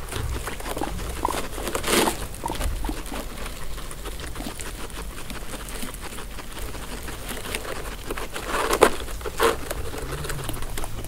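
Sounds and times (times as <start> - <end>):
dry hay rustling: 0.0 - 11.0
guinea pigs chewing hay: 0.0 - 11.0.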